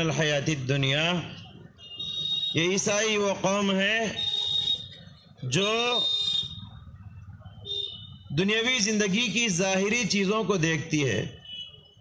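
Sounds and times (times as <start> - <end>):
man speaking over loudspeaker: 0.0 - 1.3, 2.5 - 4.2, 5.4 - 6.2, 8.3 - 11.4.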